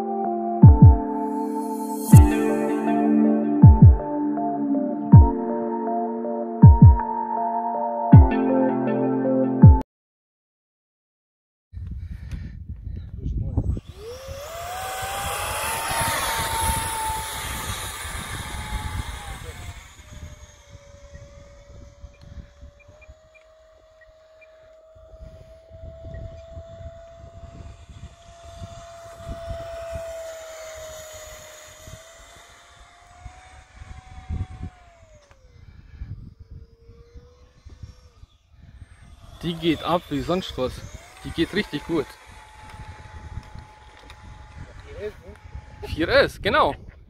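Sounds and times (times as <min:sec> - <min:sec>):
electric ducted fan whining: 0:13.4 - 0:46.7.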